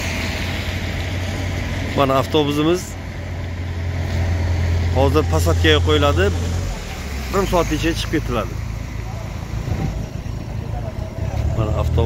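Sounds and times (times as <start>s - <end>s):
traffic engines rumbling: 0.0s - 12.0s.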